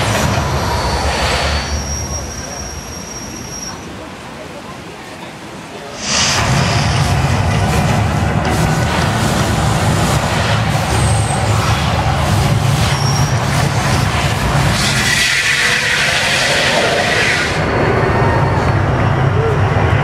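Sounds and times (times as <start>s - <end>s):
deep rumbling of flames: 6.0s - 20.0s.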